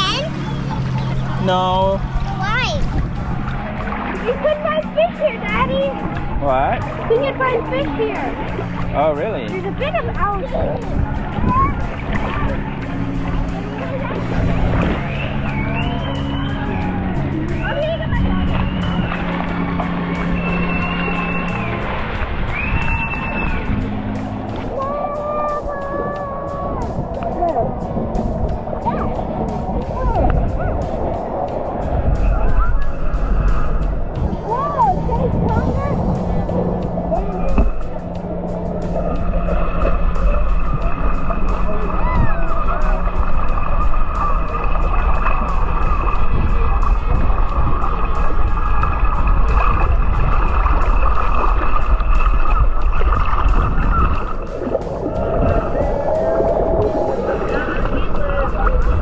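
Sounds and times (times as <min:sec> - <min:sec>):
voices: 0:00.0 - 0:48.8, 0:53.6 - 0:59.0
motor hum: 0:00.0 - 0:59.0
sea water sloshing: 0:00.0 - 0:59.0.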